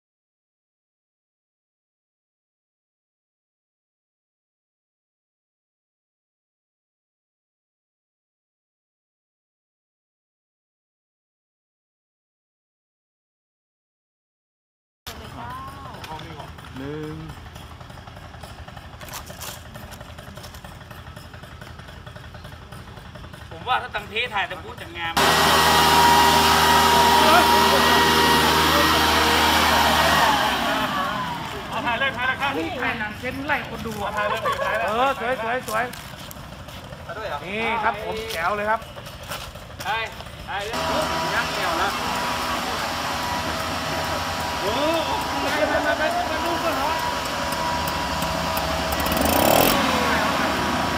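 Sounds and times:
two-stroke engine idling: 15.1s - 50.9s.

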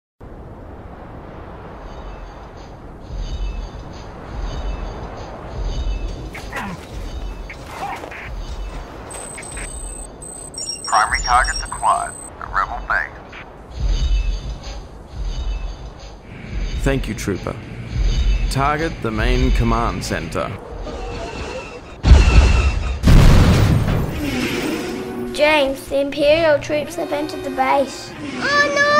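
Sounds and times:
low heavy thumps: 13.6s - 20.1s
heavy booming explosions: 22.0s - 24.3s.

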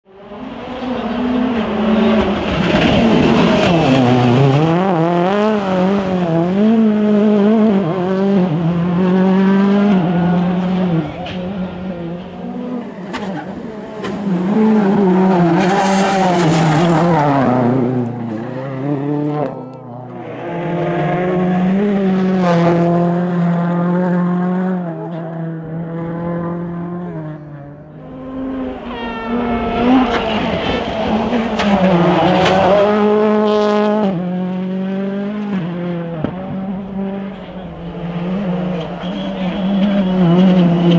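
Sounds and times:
rally car engine revving: 0.1s - 40.9s.

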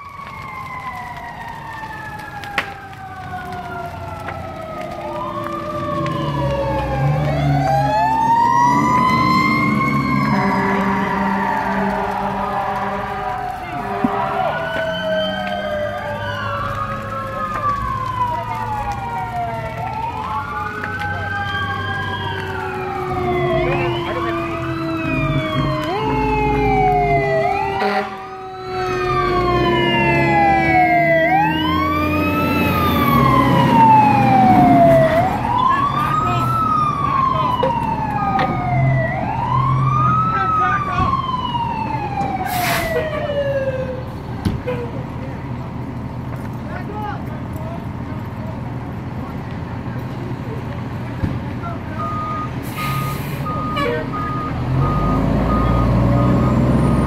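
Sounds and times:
low siren tone sliding down: 0.0s - 44.1s, 52.0s - 57.0s
fire engine sirens wailing: 0.0s - 57.0s.

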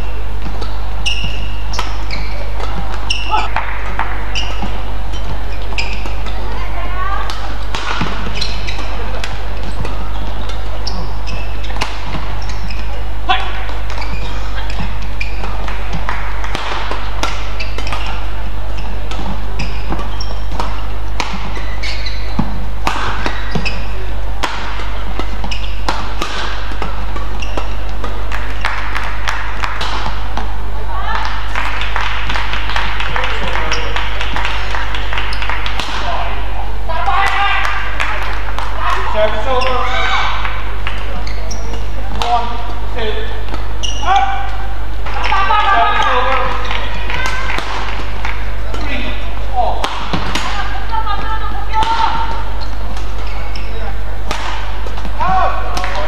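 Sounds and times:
rackets striking shuttlecock: 0.0s - 6.6s, 7.2s - 30.6s, 33.8s - 36.1s, 37.2s - 56.0s
shoes squeaking on court: 0.0s - 30.6s, 33.2s - 36.0s, 38.1s - 49.4s, 50.0s - 56.0s
crowd cheering: 28.2s - 30.1s, 30.8s - 36.2s, 45.0s - 48.6s.

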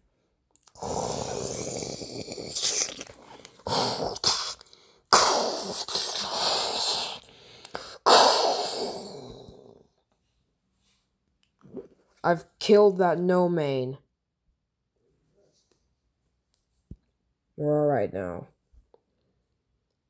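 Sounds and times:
person growling and roaring: 0.6s - 10.0s.

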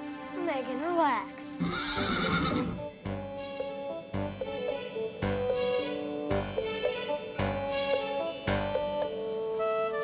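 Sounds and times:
background music with held notes: 0.0s - 10.0s
horse whinnying: 1.6s - 2.9s.

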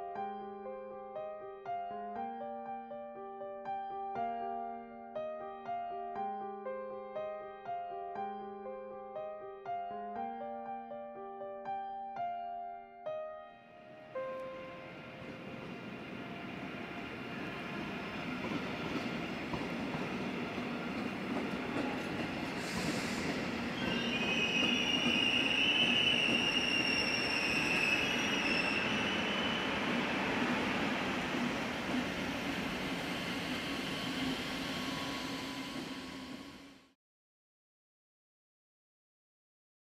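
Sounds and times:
train rumbling over tracks: 14.6s - 36.9s
train wheels squealing: 20.6s - 36.9s.

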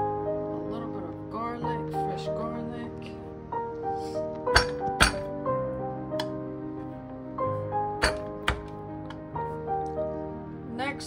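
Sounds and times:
piano-like background music: 0.0s - 11.0s.

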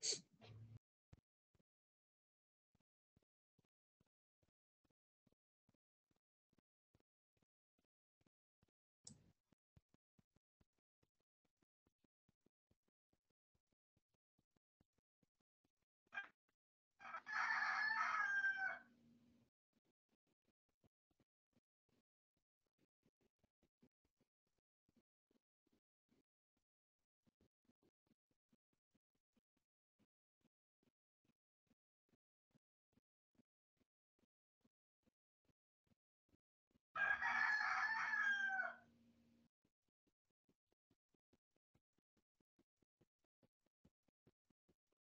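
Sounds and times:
rooster crowing: 17.0s - 18.9s, 37.0s - 38.9s.

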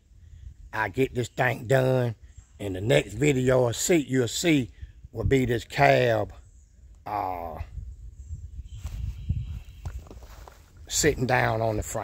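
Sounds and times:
low rumble on microphone: 6.3s - 12.0s
footsteps on grass and dirt: 8.7s - 12.0s.

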